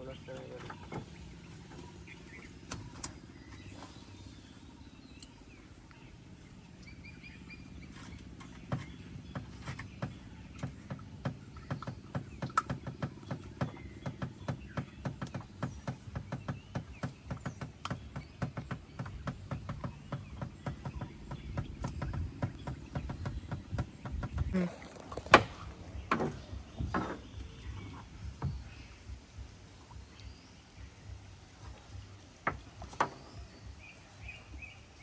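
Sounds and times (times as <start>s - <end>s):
taps and knocks on wooden canoe: 0.3s - 3.8s, 7.8s - 34.7s.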